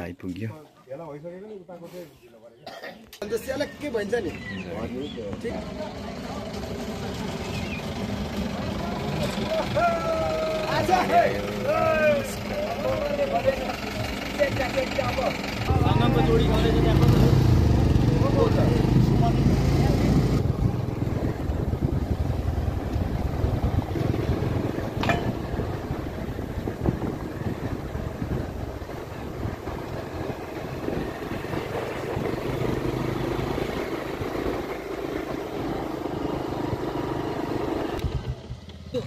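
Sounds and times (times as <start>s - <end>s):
vehicle rumbling on dirt road: 3.2s - 39.0s.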